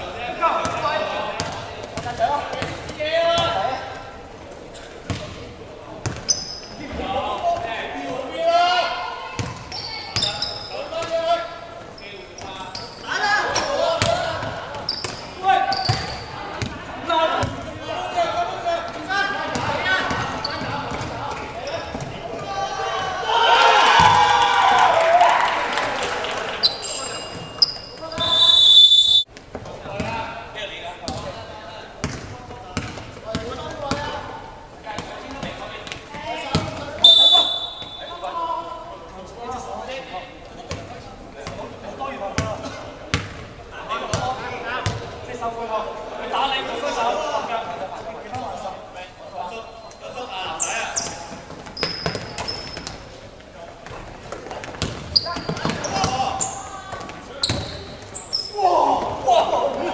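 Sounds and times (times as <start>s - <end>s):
basketball bouncing on court: 5.1s - 5.4s, 9.4s - 10.4s, 14.0s - 16.7s, 19.5s - 22.1s, 32.0s - 34.1s, 36.5s - 36.9s, 44.1s - 45.1s, 53.9s - 57.9s
players shouting: 22.2s - 27.2s, 55.3s - 59.9s.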